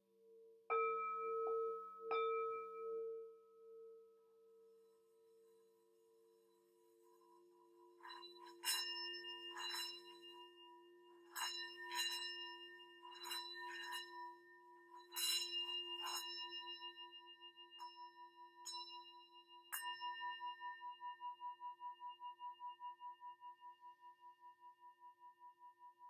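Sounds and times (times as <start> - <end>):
metal singing bowl ringing: 7.9 - 23.1.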